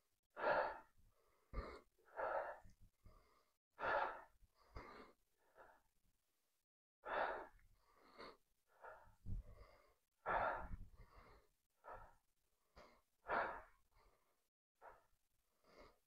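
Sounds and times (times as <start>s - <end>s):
man breathing hard: 0.4s - 5.9s, 7.0s - 16.0s.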